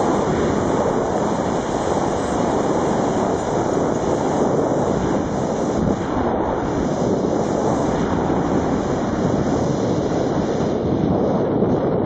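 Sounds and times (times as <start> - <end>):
skis hissing on snow: 0.0 - 10.0
wind rushing over microphone: 0.0 - 12.0.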